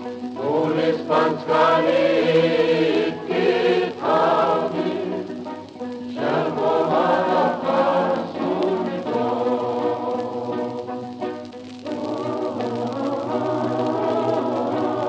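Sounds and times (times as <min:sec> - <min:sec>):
choir singing: 0:00.3 - 0:15.0.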